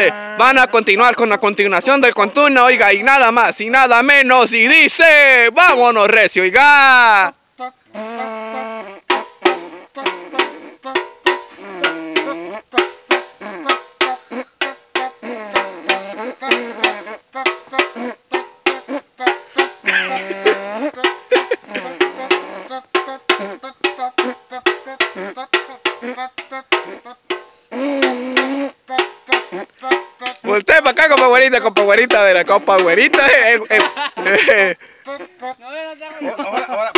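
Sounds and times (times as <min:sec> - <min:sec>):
men buzzing brass lines with mouths: 0:00.0 - 0:02.6, 0:07.6 - 0:36.9
stick beating metal bucket: 0:09.1 - 0:34.5, 0:36.5 - 0:36.9.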